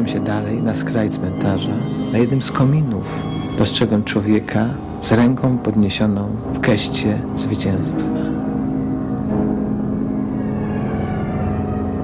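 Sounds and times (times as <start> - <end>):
low drone soundtrack: 0.0 - 12.0.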